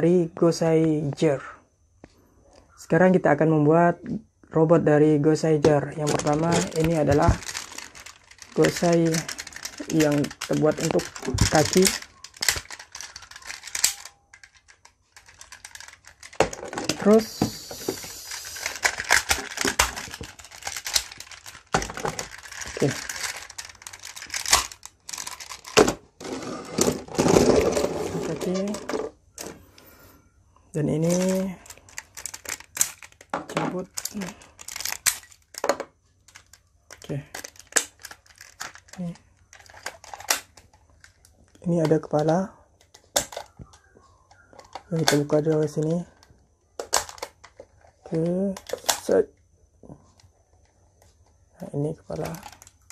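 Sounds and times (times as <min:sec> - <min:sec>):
plastic handling noise: 0:05.4 - 0:30.0, 0:30.8 - 0:49.2, 0:50.0 - 0:52.9
plastic toy parts clicking: 0:06.0 - 0:26.0, 0:31.0 - 0:49.2, 0:52.1 - 0:52.9.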